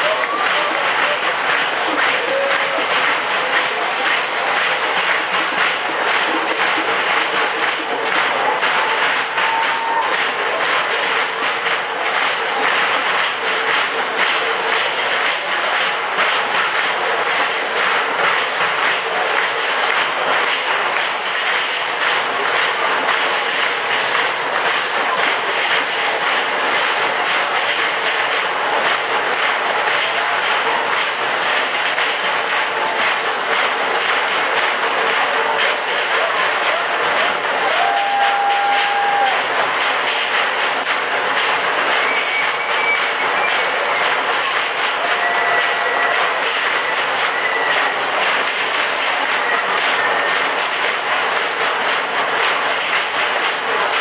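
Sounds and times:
audience clapping: 0.0 - 54.0.

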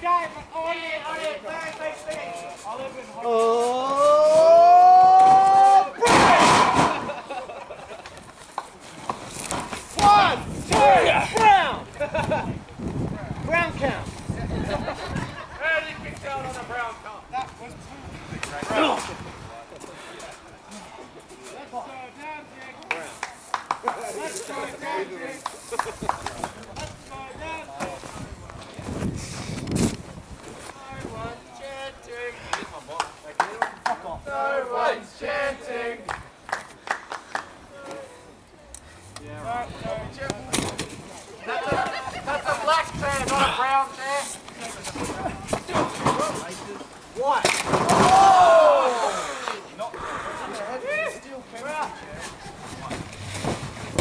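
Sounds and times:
person yelling: 3.4 - 6.5.

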